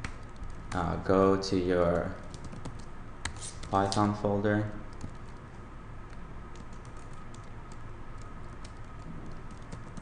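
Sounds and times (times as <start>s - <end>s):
low background hum: 0.0s - 10.0s
keyboard keys clicking: 6.1s - 10.0s.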